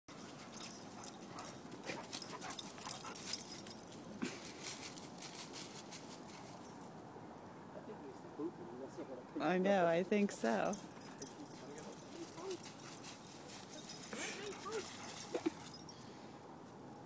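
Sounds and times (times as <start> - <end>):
dogs rustling through dry leaves: 0.2 - 6.7, 11.0 - 15.8.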